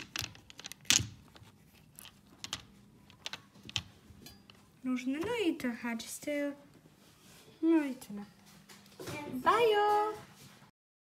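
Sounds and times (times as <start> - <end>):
plastic bottles clicking and knocking: 0.0 - 3.9.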